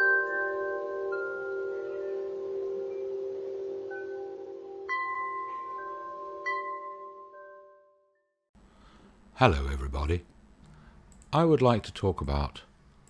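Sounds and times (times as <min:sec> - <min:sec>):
ringing chime tones: 0:00.0 - 0:08.0.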